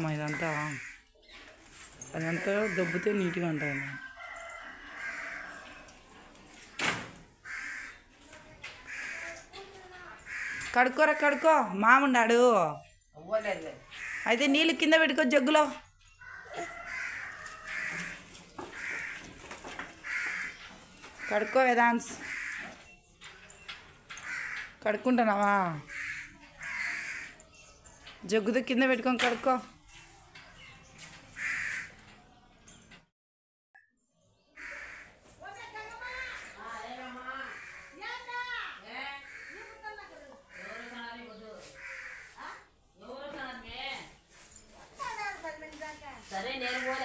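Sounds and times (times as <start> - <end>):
bird harsh calls: 13.8 - 14.5, 31.3 - 32.0, 34.5 - 35.2, 40.5 - 42.6.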